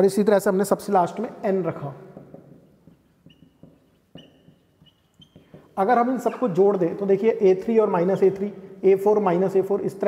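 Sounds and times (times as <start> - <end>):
marker squeaking on whiteboard: 1.0 - 10.0
marker tip tapping: 2.1 - 6.4.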